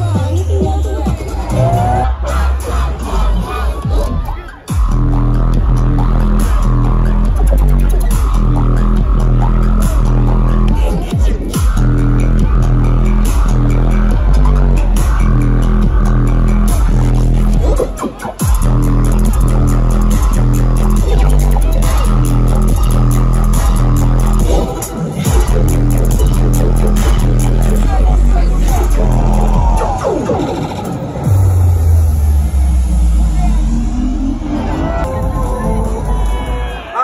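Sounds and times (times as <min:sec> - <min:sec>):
electronic bass music: 0:00.0 - 0:37.0.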